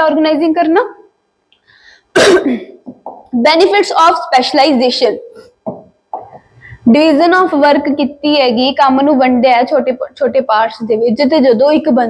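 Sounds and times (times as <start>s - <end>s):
woman coughing sharply: 2.1s - 3.0s.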